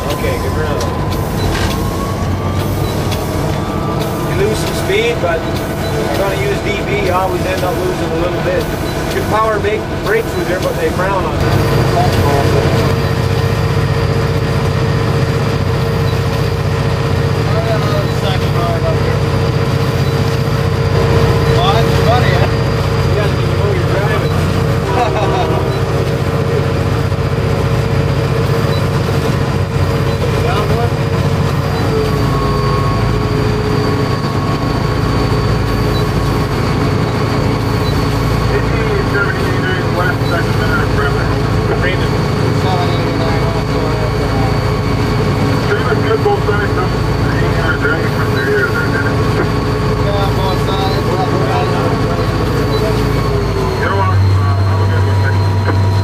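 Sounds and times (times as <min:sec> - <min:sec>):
diesel locomotive engine drone: 0:00.0 - 0:56.0
steady whining tones: 0:00.0 - 0:56.0.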